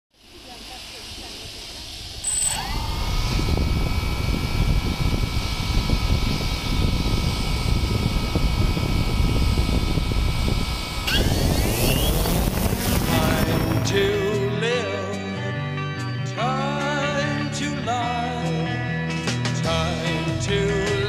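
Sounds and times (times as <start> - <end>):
propeller wash rumble: 0.1 - 14.6
drone motors whining: 0.2 - 14.7
short high beep: 2.2 - 2.8.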